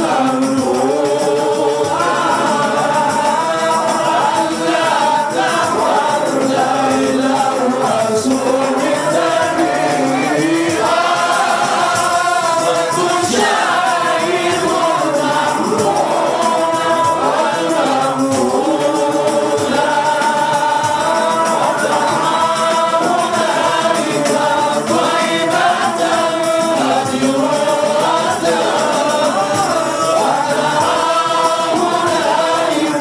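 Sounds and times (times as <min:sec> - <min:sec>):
men singing together: 0:00.0 - 0:33.0.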